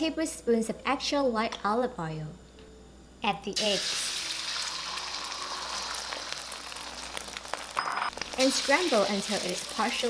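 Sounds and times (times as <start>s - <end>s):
eggs sizzling in hot oil: 3.6s - 10.0s.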